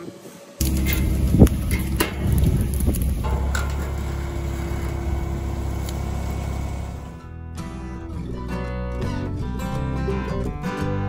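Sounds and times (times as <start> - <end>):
motor humming: 0.6 - 7.2.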